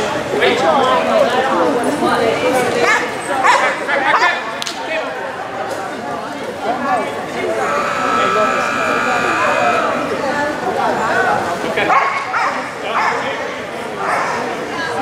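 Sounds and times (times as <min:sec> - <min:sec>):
voices in echoing hall: 0:00.0 - 0:15.0.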